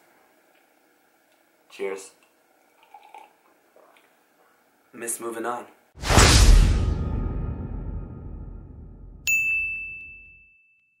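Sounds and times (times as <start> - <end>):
whoosh: 6.0 - 9.2
bright bell-like ding: 9.2 - 11.0.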